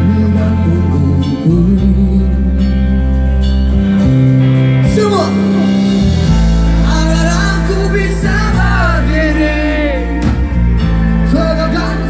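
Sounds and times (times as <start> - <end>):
man singing: 0.0 - 3.0, 6.7 - 12.0
bass guitar: 0.0 - 12.0
electric guitar: 0.0 - 12.0.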